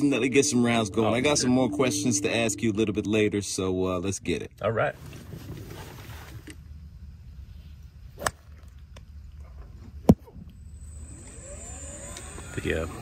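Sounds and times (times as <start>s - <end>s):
steady low rumble: 0.0s - 5.0s, 6.6s - 11.6s
golf club striking ball: 8.2s - 8.5s.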